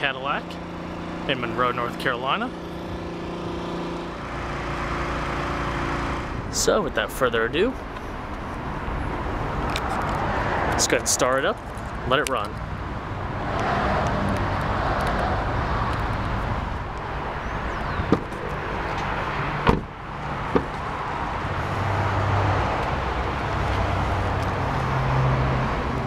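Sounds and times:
car engine idling: 0.0s - 10.4s, 15.5s - 25.0s
car door unlatching clicks: 18.0s - 19.9s, 20.5s - 20.8s.

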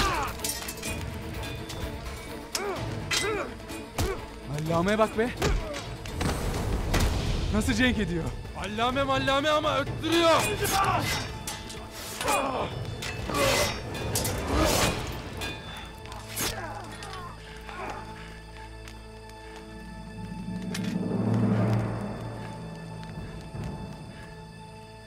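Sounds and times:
dramatic background score: 0.0s - 25.0s
fighting hits and cries: 2.6s - 4.3s, 5.4s - 6.3s.

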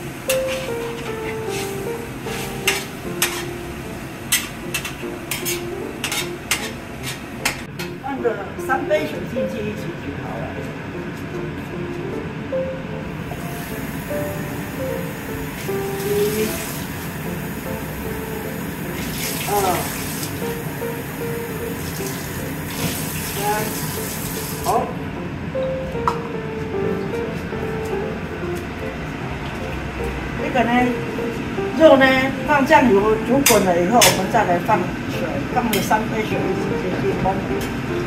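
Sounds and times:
light background music: 0.0s - 38.0s.

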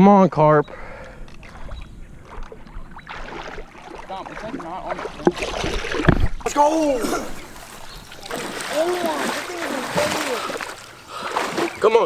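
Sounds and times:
water sloshing and splashing: 1.3s - 12.0s.

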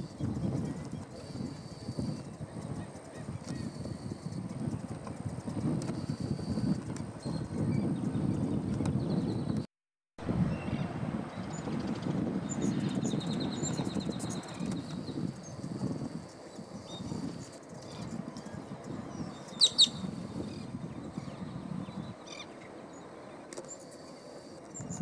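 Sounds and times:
songbird calls: 16.3s - 25.0s
sharp bird chirps: 19.4s - 20.1s.

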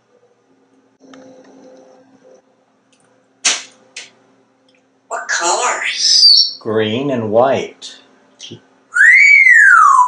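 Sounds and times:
parrot whistling: 5.7s - 6.6s, 8.9s - 10.0s.

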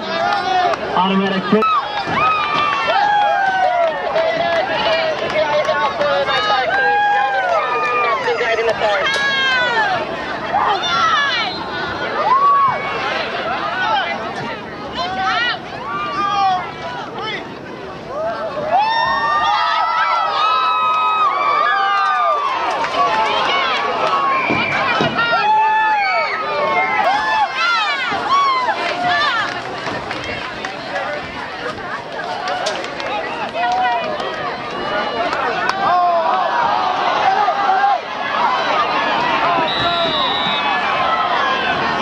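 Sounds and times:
crowd shouting and cheering: 0.0s - 42.0s.

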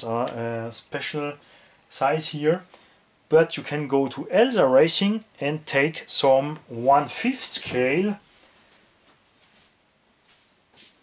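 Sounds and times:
handling and shuffling: 6.7s - 11.0s.

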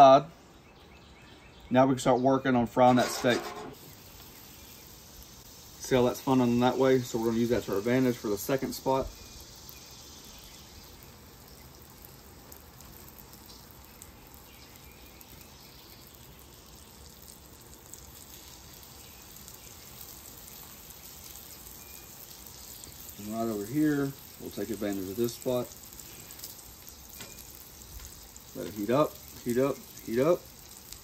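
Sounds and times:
steaks sizzling in oil: 2.9s - 31.0s.

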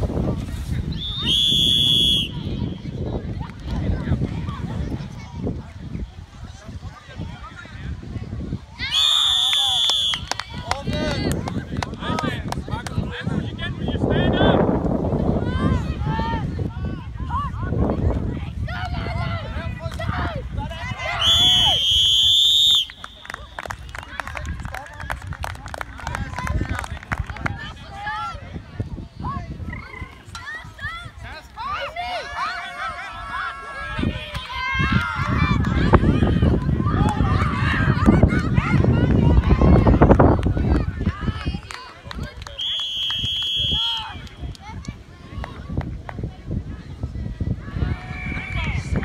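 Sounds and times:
referee's whistle blast: 0.9s - 2.5s, 8.9s - 10.3s, 21.2s - 23.5s, 42.6s - 44.2s
voices: 15.3s - 49.0s.

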